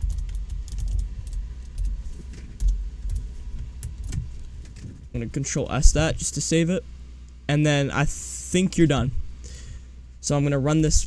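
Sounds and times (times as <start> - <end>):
computer keyboard keystrokes: 0.0 - 4.3
low background rumble: 0.0 - 11.0.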